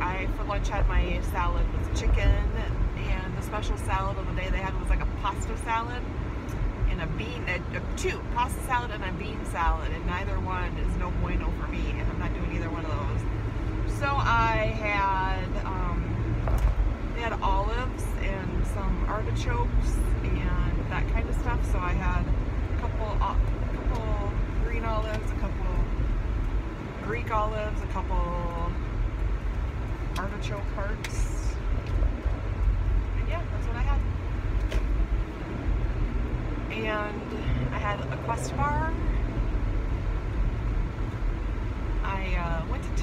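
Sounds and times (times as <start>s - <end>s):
woman speaking: 0.0s - 6.1s, 6.8s - 13.2s, 13.9s - 16.2s, 17.2s - 25.9s, 27.0s - 28.8s, 30.2s - 31.6s, 33.2s - 34.1s, 36.7s - 39.1s, 42.0s - 43.0s
car cabin road rumble: 0.0s - 43.0s.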